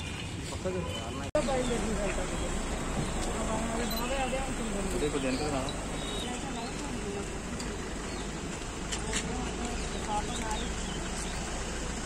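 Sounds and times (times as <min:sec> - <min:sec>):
low outdoor rumble: 0:01.4 - 0:12.0.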